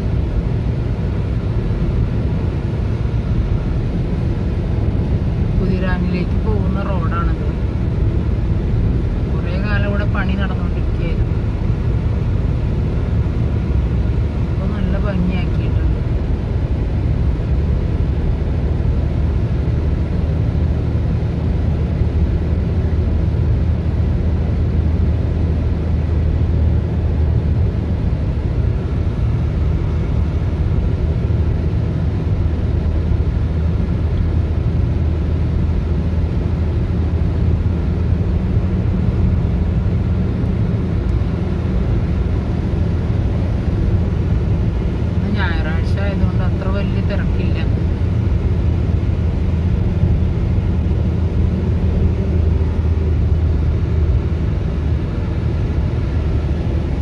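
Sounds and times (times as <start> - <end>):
car cabin road rumble: 0.0 - 57.0.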